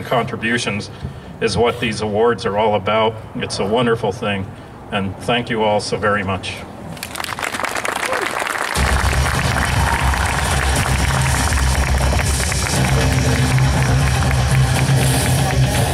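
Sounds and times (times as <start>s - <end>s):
audience applauding: 7.0s - 15.9s
music with heavy bass and drums: 8.8s - 15.9s.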